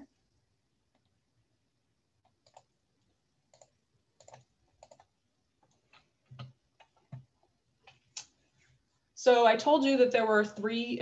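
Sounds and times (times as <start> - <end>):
keyboard and mouse clicks: 2.2 - 2.7, 3.5 - 8.3.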